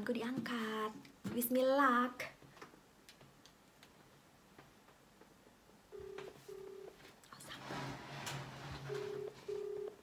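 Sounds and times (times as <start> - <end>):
telephone ringback beeps: 5.9 - 7.0, 8.9 - 10.0
rustling: 6.0 - 9.9.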